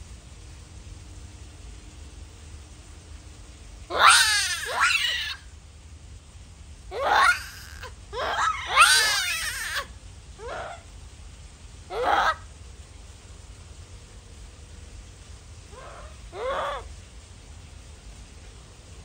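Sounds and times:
monkey screaming: 3.9s - 5.5s, 6.9s - 10.9s, 11.9s - 12.5s, 15.7s - 16.9s.

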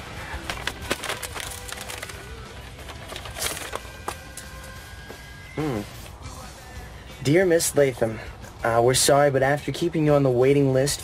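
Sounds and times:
soft soundtrack music: 0.0s - 10.2s
paper envelope tearing: 0.4s - 3.9s.

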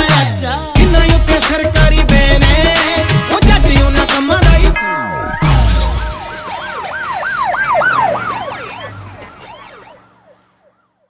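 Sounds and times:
falling pitch sweep: 4.8s - 10.8s
siren-like wail: 5.0s - 11.0s.

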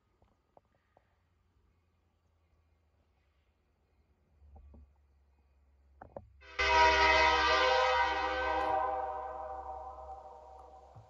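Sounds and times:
locomotive air horn blast: 6.4s - 10.9s.

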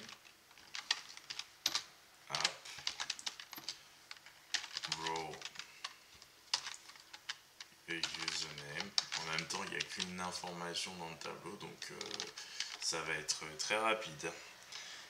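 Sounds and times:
computer keyboard typing: 0.0s - 10.4s, 11.9s - 12.9s.

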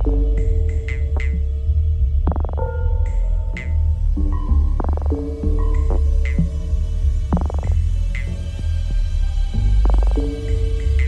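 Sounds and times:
electronic music from vinyl record: 2.3s - 2.7s, 4.7s - 6.5s, 7.3s - 8.3s, 9.7s - 10.4s.

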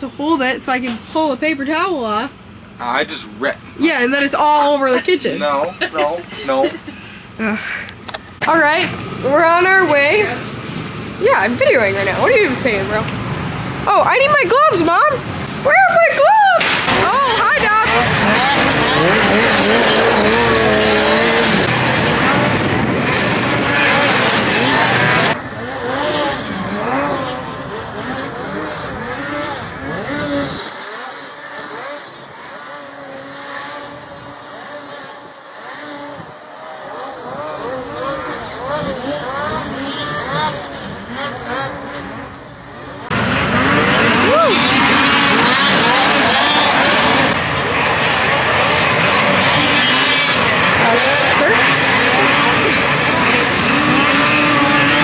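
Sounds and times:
snowmobile engines revving: 0.0s - 55.0s.

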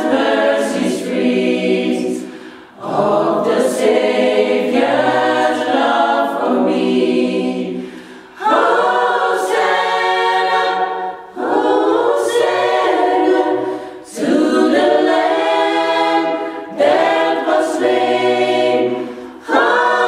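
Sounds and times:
choir singing a cappella: 0.0s - 20.0s.

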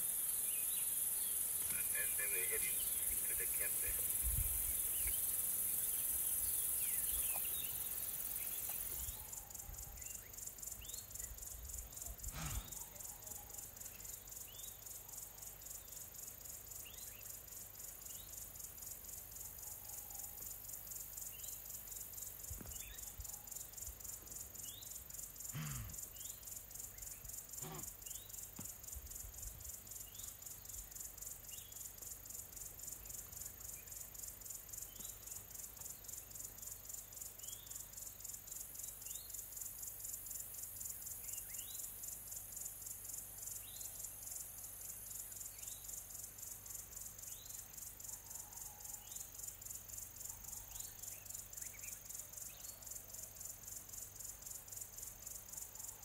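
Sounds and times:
crickets trilling: 0.0s - 56.0s.

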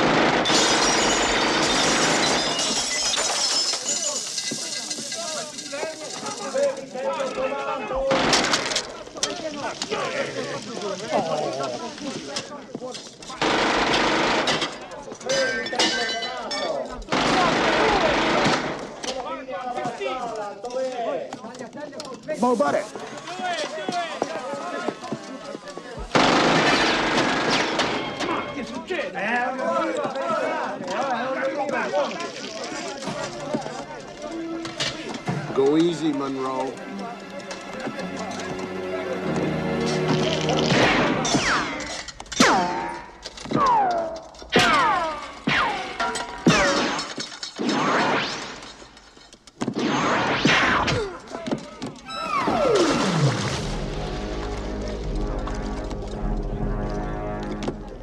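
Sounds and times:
rapid gunfire: 0.0s - 2.4s, 13.4s - 14.7s, 17.1s - 18.9s, 26.1s - 28.1s
things shattering: 0.0s - 7.3s, 14.4s - 19.2s, 31.6s - 58.0s
music score: 33.3s - 41.2s, 52.2s - 58.0s.

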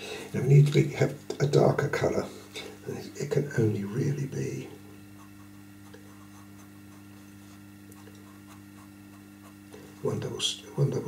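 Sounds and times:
pencil scratching on paper: 5.2s - 10.1s.

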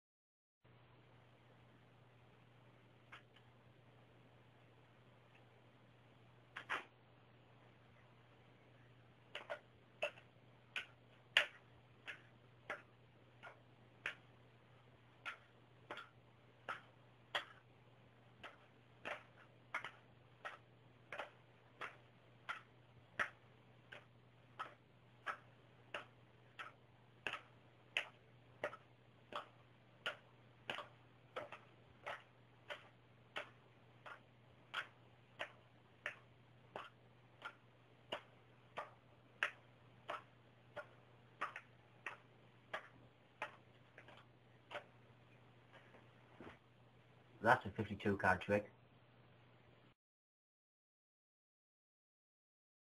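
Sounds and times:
playing cards clicking: 6.5s - 6.9s.

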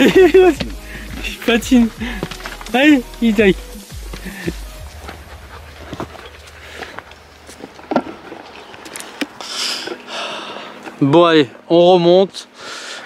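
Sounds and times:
dog panting hard: 4.9s - 7.0s.

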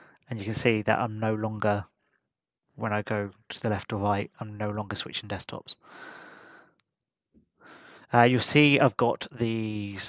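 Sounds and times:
person breathing in: 5.8s - 6.8s, 7.6s - 8.1s
person breathing out: 5.8s - 6.8s.

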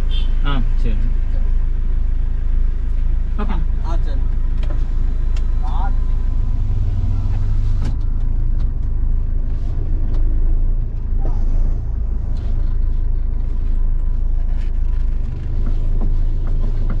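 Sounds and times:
car engine low rumble: 0.0s - 17.0s.

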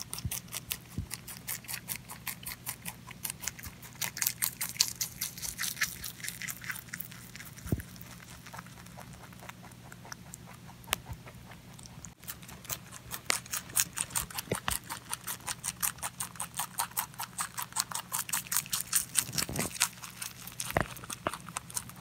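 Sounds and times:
rabbit chewing greens: 0.0s - 22.0s.

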